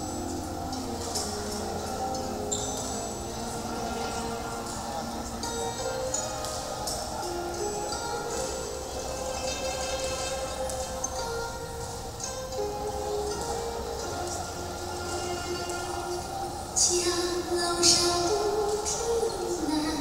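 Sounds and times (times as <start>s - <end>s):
slow song over loudspeakers: 0.0s - 20.0s
person singing: 12.6s - 20.0s.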